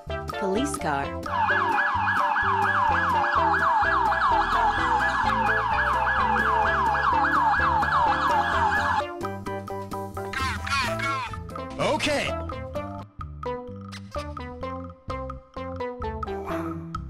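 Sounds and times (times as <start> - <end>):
children's background music: 0.0 - 17.0
electronic police siren wailing: 1.3 - 9.1.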